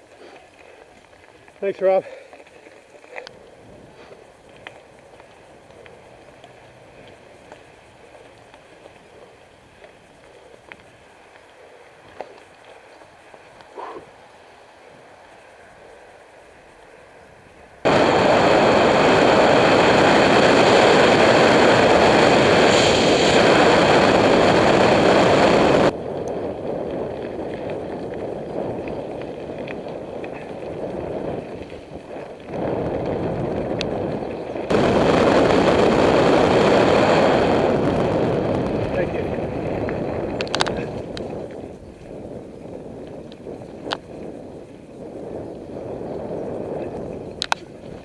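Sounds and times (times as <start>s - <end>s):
tyres on gravel road: 0.0s - 48.0s
wind buffeting microphone: 2.7s - 12.7s, 17.5s - 48.0s.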